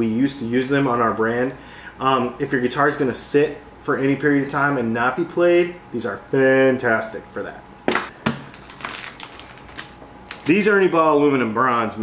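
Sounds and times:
string packets crinkling: 8.2s - 10.8s.

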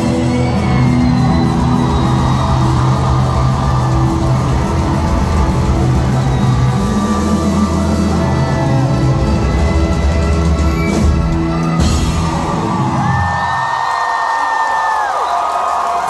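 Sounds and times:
live rock band playing loud: 0.0s - 12.9s.

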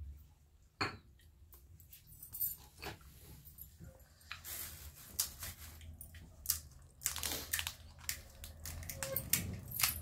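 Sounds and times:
crisp shell crackling: 6.5s - 10.0s.

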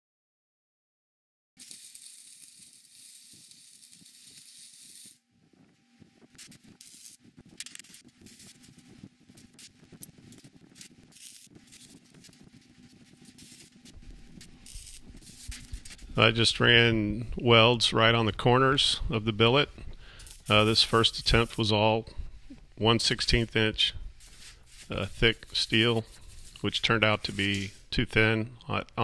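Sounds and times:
welder hissing and crackling: 1.6s - 5.3s, 6.3s - 16.4s, 19.6s - 28.0s.

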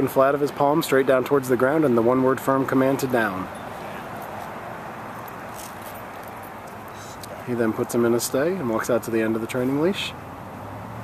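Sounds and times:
outdoor background noise: 0.0s - 11.0s.

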